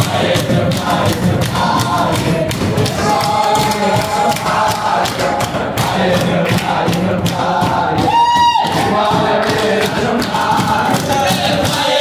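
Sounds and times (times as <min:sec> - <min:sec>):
group of men singing in unison: 0:00.0 - 0:12.0
hands beating time: 0:00.0 - 0:12.0.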